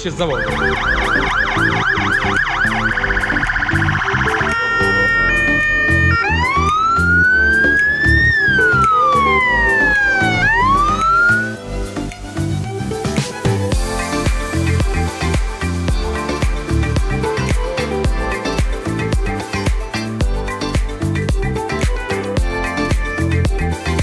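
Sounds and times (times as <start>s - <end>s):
background music with beat: 0.0s - 24.0s
electronic fire engine siren: 0.2s - 11.6s.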